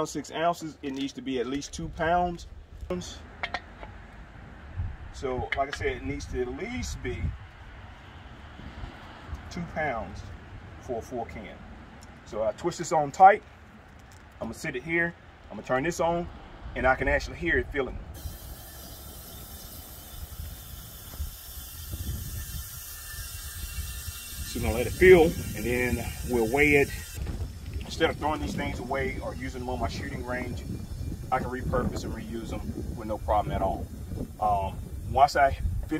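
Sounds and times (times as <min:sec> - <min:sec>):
wind rumble on microphone: 0:01.6 - 0:11.9, 0:16.0 - 0:35.9
gas hissing through hose: 0:18.2 - 0:35.2.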